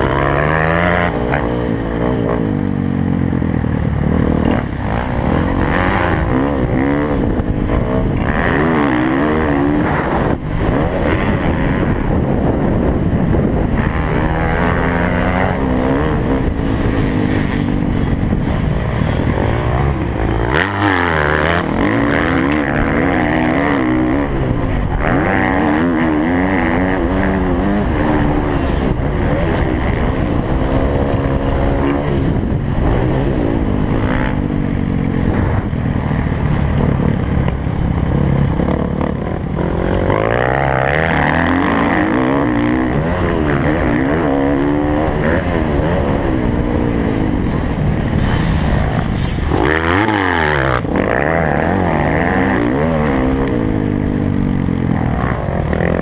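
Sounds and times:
dirt bike engine revving: 0.0s - 56.0s.

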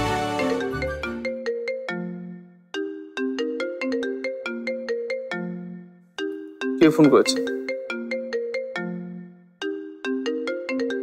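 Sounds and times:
background score music: 0.0s - 2.6s
mobile phone ringtone: 3.0s - 11.0s.

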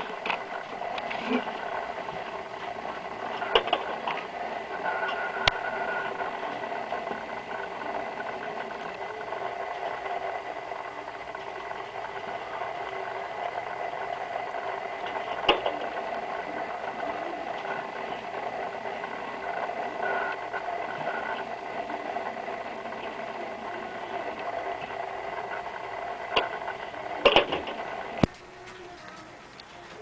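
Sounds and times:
faint steady tone: 0.0s - 30.0s
motor and gears whirring rattle: 0.0s - 30.0s.

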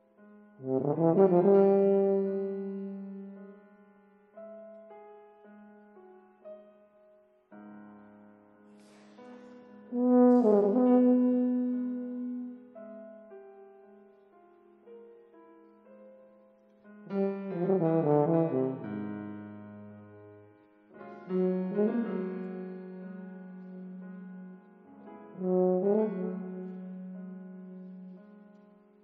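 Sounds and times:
grand piano: 0.0s - 29.0s
bass tuba: 0.6s - 3.4s, 9.9s - 12.6s, 17.1s - 20.0s, 21.3s - 24.3s, 25.3s - 28.2s.

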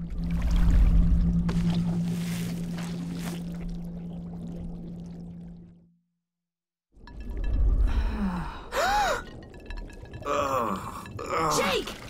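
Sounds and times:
deep underwater rumble: 0.0s - 5.9s.

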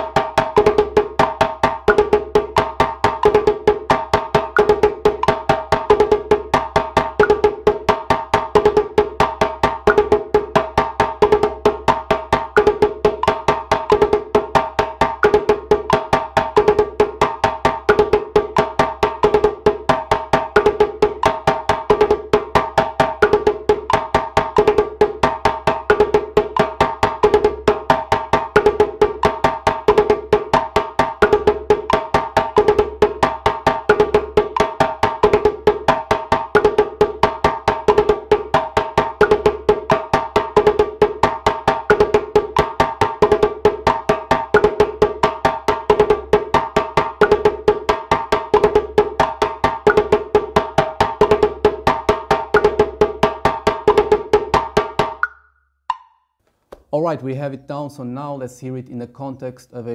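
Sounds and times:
djembe played by hand: 0.0s - 55.2s.

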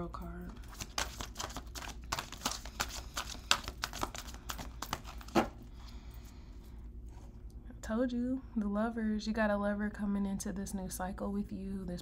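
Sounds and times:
cards being shuffled: 0.5s - 5.6s.

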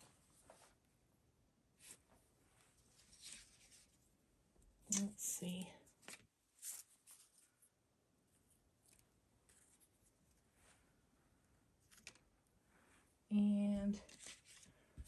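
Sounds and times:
plastic stencils rustling: 13.9s - 15.0s.

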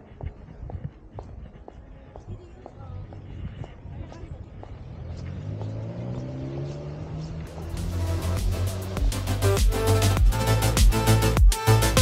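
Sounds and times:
street noise: 0.0s - 12.0s
vehicle engine accelerating: 4.2s - 11.4s
music: 7.5s - 12.0s.

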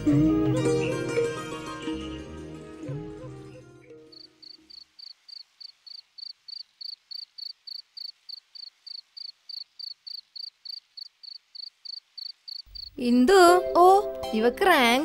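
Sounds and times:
music cue: 0.0s - 4.2s, 13.0s - 15.0s
cricket chirping: 4.1s - 13.0s.

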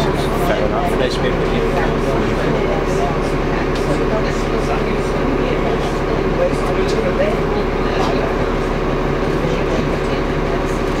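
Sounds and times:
bus diesel engine humming: 0.0s - 11.0s
passengers' voices murmuring: 0.0s - 11.0s.

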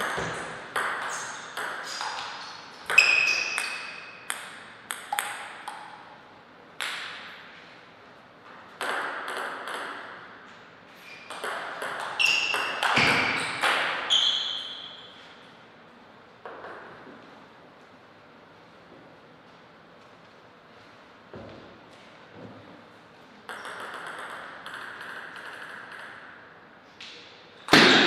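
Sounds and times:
table tennis ball clicking: 23.5s - 26.4s.

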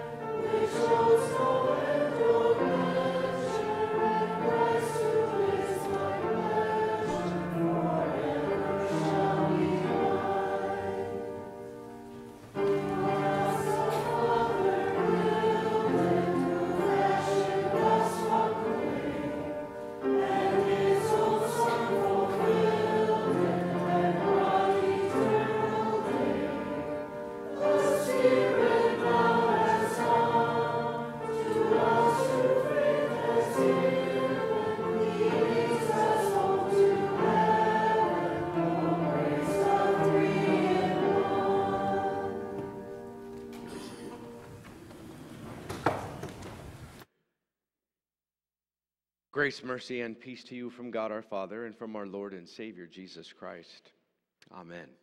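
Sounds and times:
held accompanying notes: 0.0s - 45.6s
congregation singing a hymn: 0.0s - 46.2s.

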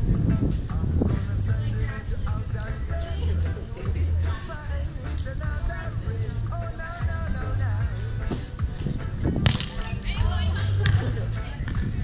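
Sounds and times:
hand slapping volleyball: 9.4s - 9.8s, 10.8s - 11.1s.

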